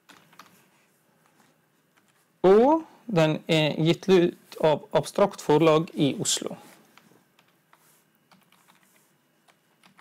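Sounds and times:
computer keyboard clicks: 9.5s - 10.0s.

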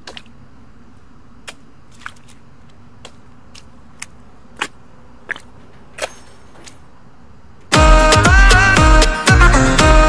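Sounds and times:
loud electronic music: 7.7s - 10.0s.

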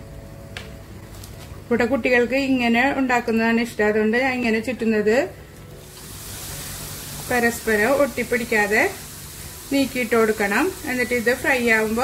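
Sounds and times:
batter sizzling in hot oil: 5.8s - 12.0s.

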